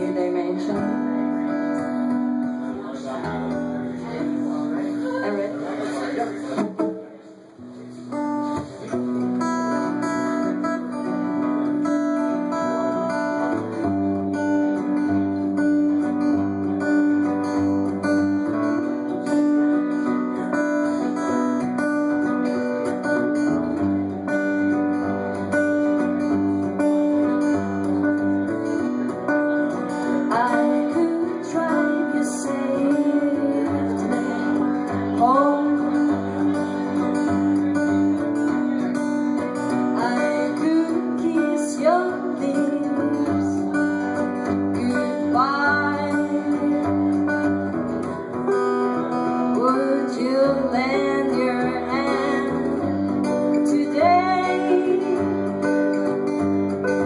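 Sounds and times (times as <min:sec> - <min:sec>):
acoustic guitars playing: 0:00.0 - 0:57.0.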